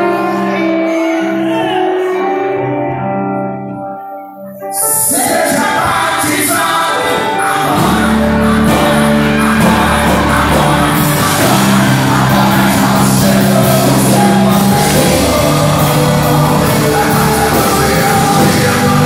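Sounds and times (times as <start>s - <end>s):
electric guitars: 0.0s - 19.0s
person singing: 0.0s - 19.0s
bass: 5.8s - 19.0s
drums: 5.8s - 19.0s.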